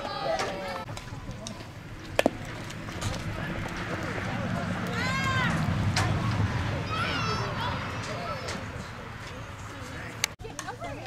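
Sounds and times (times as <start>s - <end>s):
spectators calling out: 0.0s - 10.3s
softball hitting metal bat: 0.9s - 4.2s
high yell: 4.9s - 8.5s.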